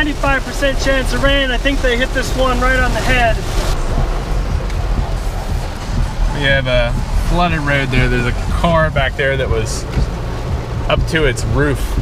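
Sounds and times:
heavy rain on car roof: 0.0 - 12.0.

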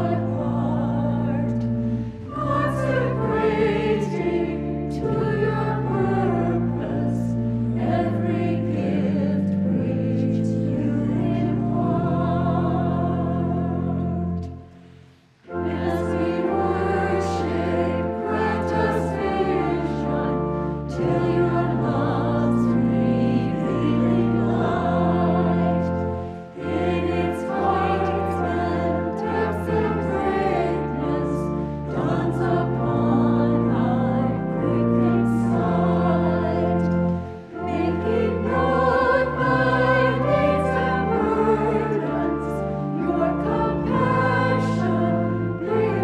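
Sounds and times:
church choir singing: 0.0 - 46.0.

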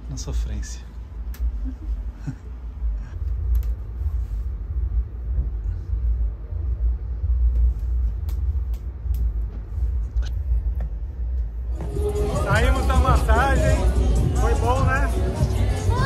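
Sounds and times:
low uneven rumble: 0.0 - 16.0.

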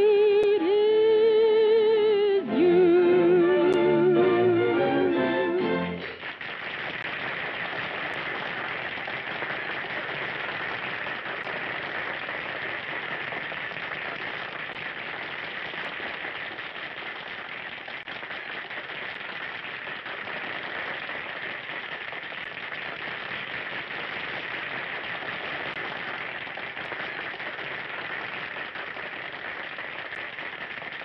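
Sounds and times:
audience applause: 3.6 - 31.0.

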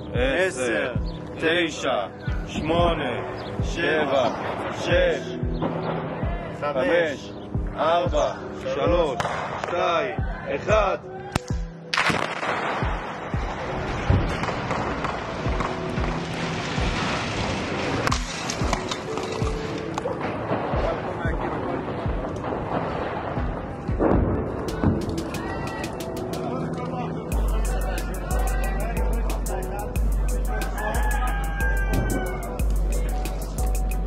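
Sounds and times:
background music with steady beat: 0.0 - 17.4, 18.0 - 34.0
explosion blast: 20.4 - 25.2.

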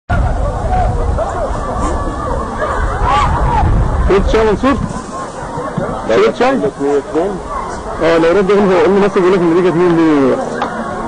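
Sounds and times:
steady low rumble: 0.1 - 6.1
babble of many people talking: 0.1 - 11.0.

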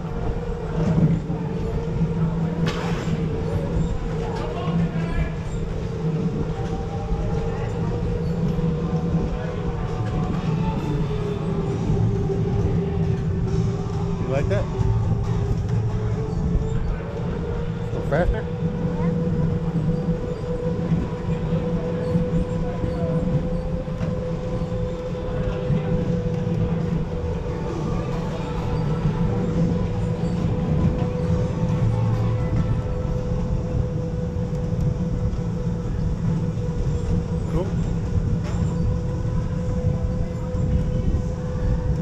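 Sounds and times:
low rumble of wheels: 0.0 - 42.0.

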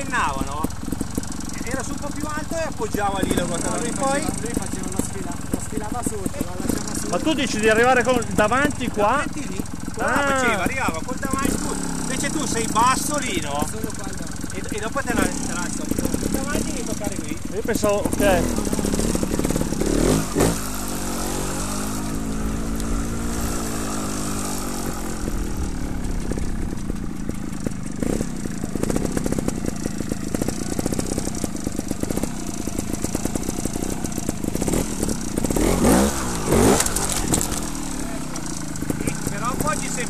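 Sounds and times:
motorcycle engine revving and idling: 0.0 - 40.0.

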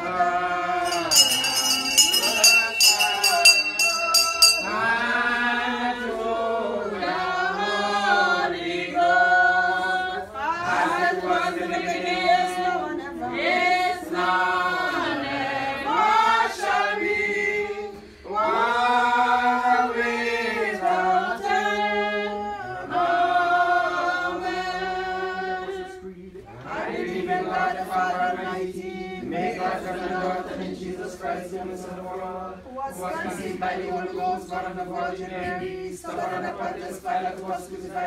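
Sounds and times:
congregation singing a chant: 0.0 - 38.0.

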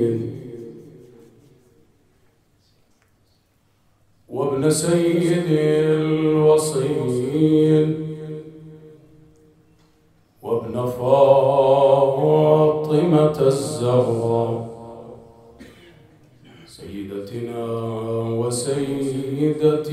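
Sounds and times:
man chanting into a microphone: 0.0 - 1.6, 4.3 - 9.2, 10.4 - 15.5, 16.5 - 19.9.

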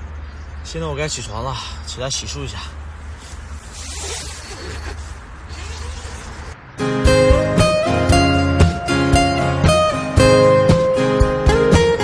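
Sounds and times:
tent fabric and clothing rustling: 3.0 - 6.6.

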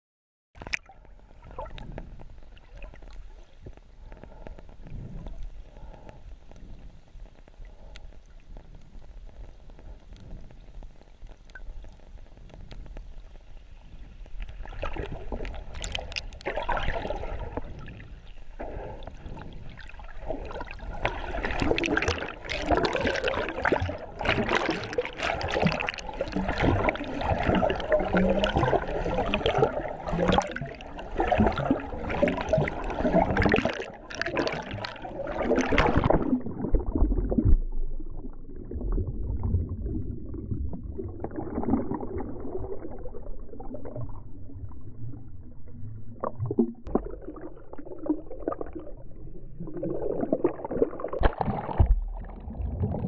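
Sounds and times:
water splashing from swimming: 14.5 - 37.8, 49.6 - 53.0.

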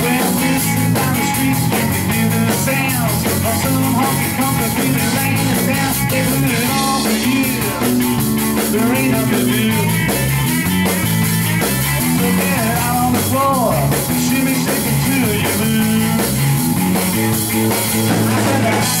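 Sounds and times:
drum kit: 0.0 - 19.0
electric guitar bending notes: 0.0 - 19.0
walking bass line: 0.0 - 19.0.

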